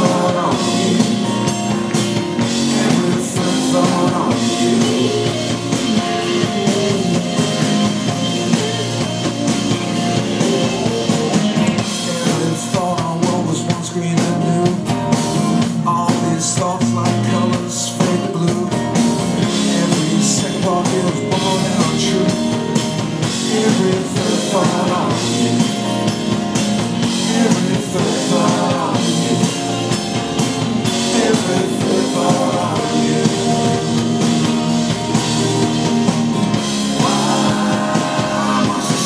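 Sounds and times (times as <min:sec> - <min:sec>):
man singing: 0:00.0 - 0:26.2, 0:27.0 - 0:30.0, 0:30.8 - 0:35.0, 0:36.6 - 0:39.0
live rock band playing: 0:00.0 - 0:39.0.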